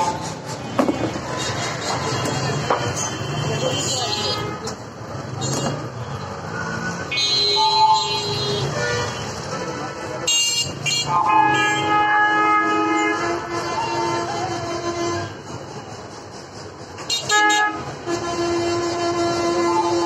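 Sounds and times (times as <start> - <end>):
vehicle horns: 0.0 - 15.5, 17.0 - 20.0
traffic: 0.0 - 20.0
many people talking: 0.1 - 6.5, 9.2 - 10.9.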